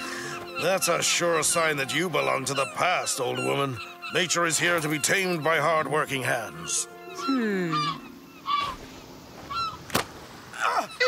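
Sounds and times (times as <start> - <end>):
seagull honking calls: 0.0 - 9.9, 10.6 - 11.0.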